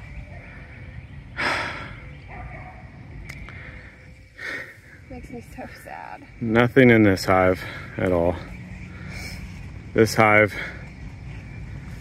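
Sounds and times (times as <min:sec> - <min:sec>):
person breathing out hard: 0:01.4 - 0:02.1, 0:03.5 - 0:05.0.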